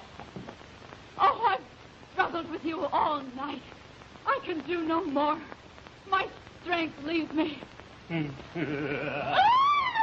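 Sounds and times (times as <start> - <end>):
woman wailing: 8.6 - 10.0.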